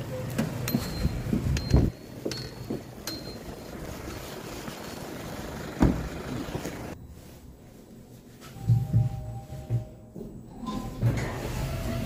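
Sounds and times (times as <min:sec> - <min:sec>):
passing traffic: 0:00.0 - 0:07.0
thump: 0:05.8 - 0:06.1.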